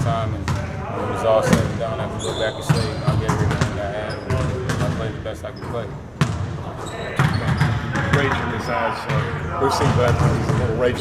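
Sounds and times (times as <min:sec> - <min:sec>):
basketballs bouncing on court: 0:00.0 - 0:00.7, 0:01.5 - 0:11.0.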